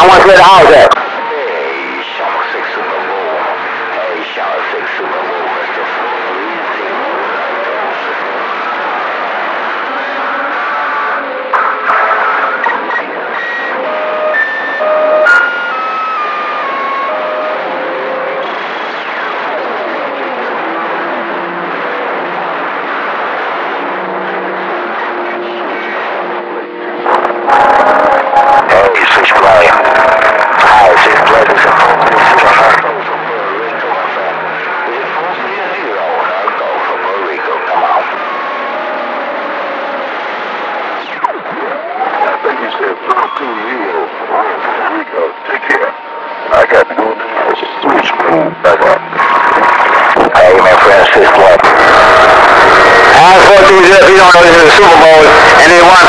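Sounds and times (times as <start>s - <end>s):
garbled radio voices: 0.0s - 56.0s
radio static: 0.0s - 56.0s.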